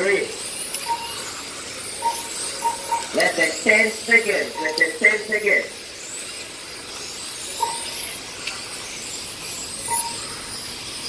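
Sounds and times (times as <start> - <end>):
rc car motors whining: 0.0 - 11.0
short beeps: 0.8 - 1.2, 2.0 - 3.2, 4.6 - 5.0, 7.6 - 8.0, 9.9 - 10.2.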